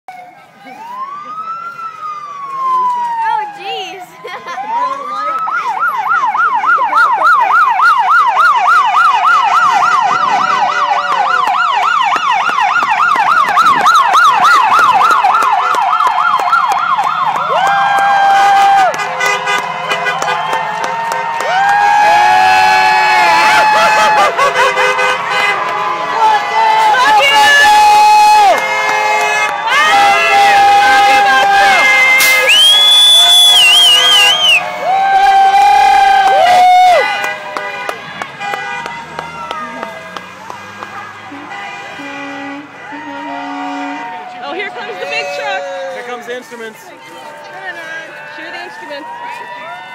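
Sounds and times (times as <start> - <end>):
police siren yelping: 0.1 - 24.8, 25.6 - 37.5
vehicle horns honking: 18.3 - 21.4, 22.9 - 27.7, 28.4 - 34.8, 36.9 - 49.0.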